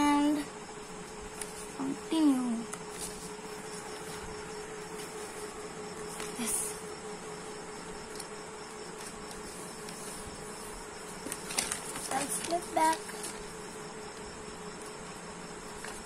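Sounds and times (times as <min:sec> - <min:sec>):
steady hum: 0:00.0 - 0:16.0
paper crackling: 0:01.1 - 0:02.0, 0:02.7 - 0:06.5, 0:09.0 - 0:13.6, 0:15.7 - 0:16.0.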